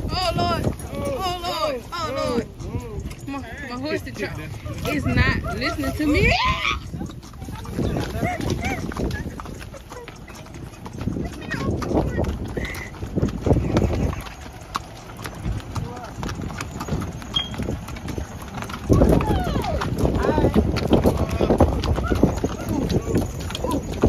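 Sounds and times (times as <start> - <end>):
hooves clip-clopping on gravel: 0.0 - 24.0
voices talking: 0.0 - 24.0.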